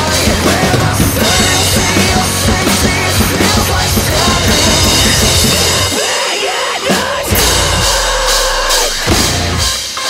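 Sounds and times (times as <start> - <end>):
drum kit playing: 0.0 - 10.0
metal backing track: 0.0 - 10.0.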